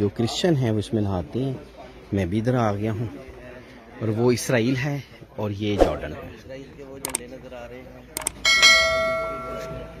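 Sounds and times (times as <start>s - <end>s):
mouse clicks: 7.0s - 7.2s.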